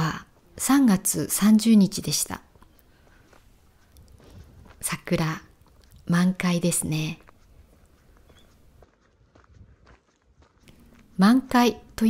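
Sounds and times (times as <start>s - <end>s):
footsteps on gravel: 1.9s - 12.0s.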